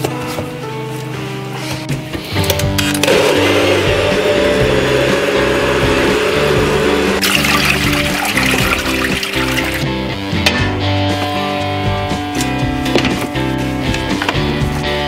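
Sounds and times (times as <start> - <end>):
background music: 0.0 - 15.0
blender running: 3.0 - 9.8.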